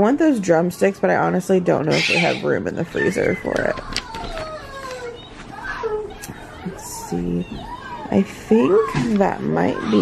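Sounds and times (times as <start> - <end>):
children playing: 2.0 - 10.0
child calling: 3.1 - 8.2.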